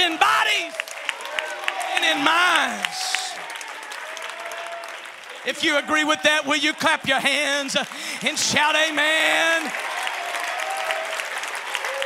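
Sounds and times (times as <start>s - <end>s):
congregation applauding: 0.0s - 12.0s.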